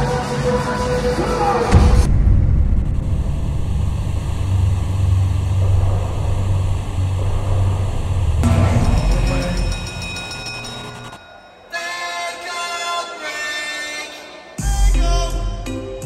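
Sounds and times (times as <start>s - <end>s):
loud bass-heavy concert music: 0.0s - 2.2s, 3.0s - 13.2s, 14.5s - 16.0s.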